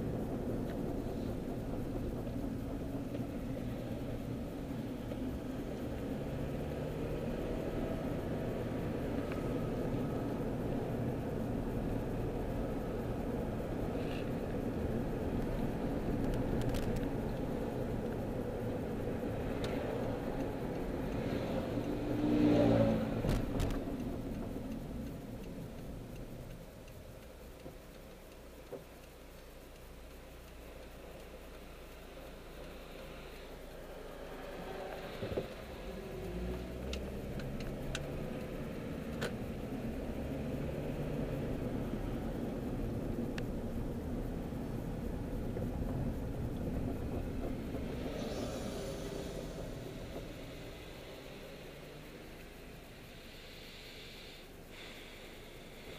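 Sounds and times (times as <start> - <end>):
car road and engine noise: 0.0 - 55.9.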